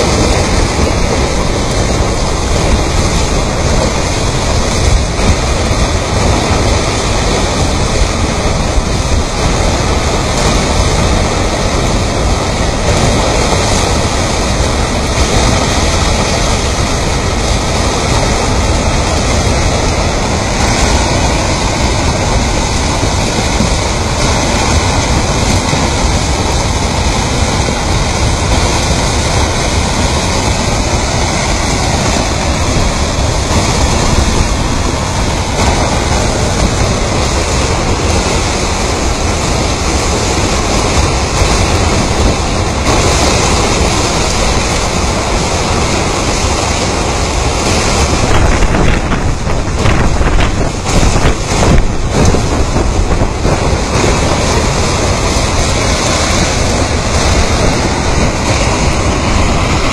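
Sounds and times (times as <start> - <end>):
rocks grinding in mud flow: 0.0 - 59.9.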